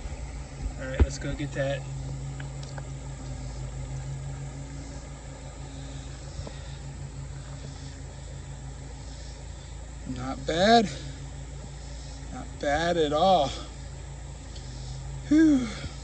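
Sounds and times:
faint outdoor hiss: 0.0s - 16.0s
steady low hum: 0.0s - 16.0s.

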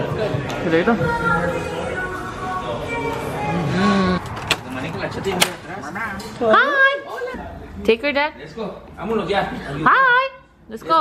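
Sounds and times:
voices in a restaurant: 0.0s - 11.0s.

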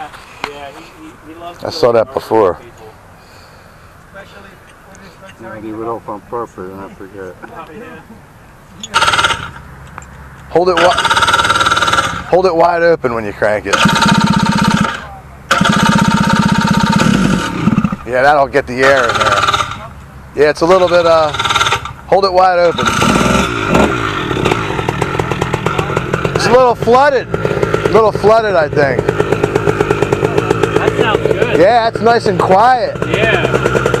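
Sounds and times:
small two-stroke engine firing: 8.8s - 9.6s, 10.7s - 12.4s, 13.7s - 19.9s, 20.7s - 34.0s.

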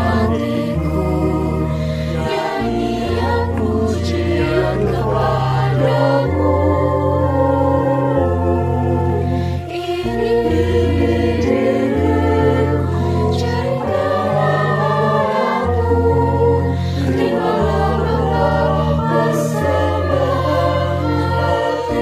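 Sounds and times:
choir singing a hymn: 0.0s - 22.0s
organ bass notes: 0.0s - 22.0s.

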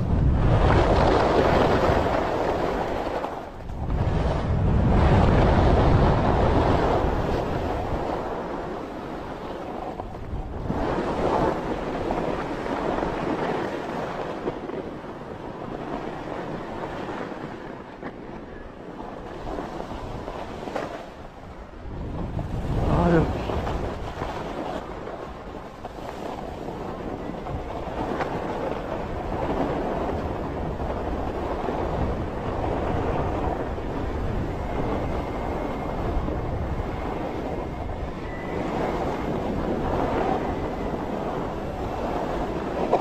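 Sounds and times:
wind on microphone: 0.0s - 43.0s
skis scraping over snow: 0.4s - 21.3s, 22.0s - 43.0s.

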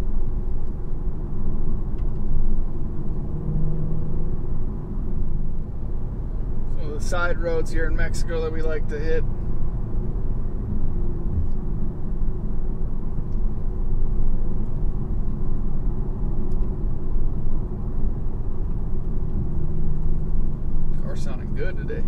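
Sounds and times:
low exhaust drone: 0.0s - 22.0s
road noise: 0.0s - 22.0s.

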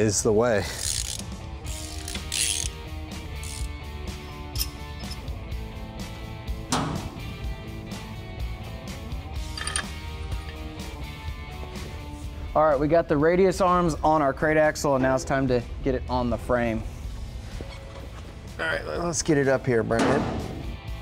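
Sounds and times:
background music: 0.0s - 21.0s
hand ratchet clicking: 0.7s - 2.8s, 3.4s - 3.7s, 4.5s - 5.3s
metal knock: 6.7s - 7.4s.

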